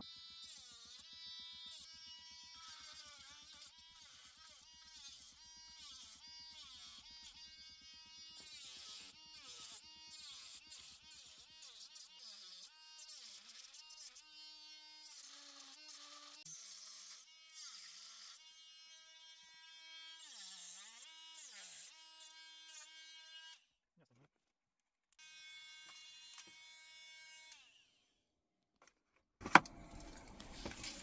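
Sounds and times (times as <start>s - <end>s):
rotary tool whining cutting plastic: 0.0s - 23.6s, 25.2s - 26.8s, 28.8s - 31.0s.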